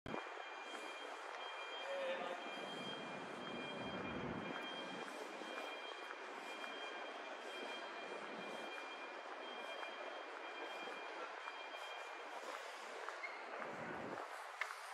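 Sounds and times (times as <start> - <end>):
distant traffic noise: 0.2 - 14.9.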